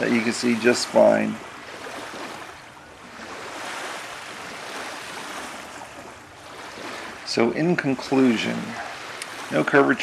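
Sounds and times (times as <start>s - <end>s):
small waves on sand beach: 0.0s - 10.0s.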